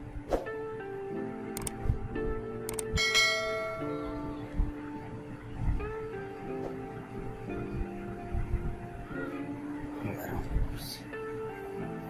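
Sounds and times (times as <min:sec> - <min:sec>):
background music with held notes: 0:00.0 - 0:12.0
click: 0:01.6 - 0:01.8, 0:02.7 - 0:02.9
bright bell-like chime: 0:03.0 - 0:04.3.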